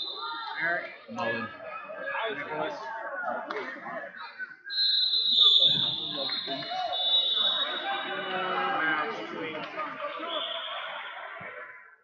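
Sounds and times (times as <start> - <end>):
crowd chatter: 0.0 - 12.0
referee's whistle blast: 4.1 - 8.9, 10.1 - 11.2.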